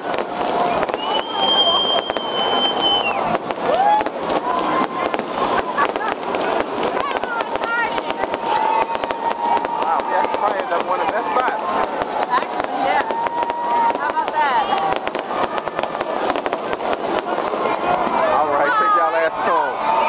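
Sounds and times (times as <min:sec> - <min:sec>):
fireworks cracking and popping: 0:00.0 - 0:20.0
high steady whistle: 0:00.6 - 0:03.4.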